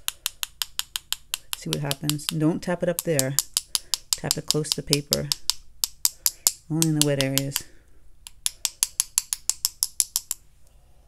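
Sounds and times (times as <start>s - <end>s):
paintbrush tapping clicks: 0.0s - 10.4s.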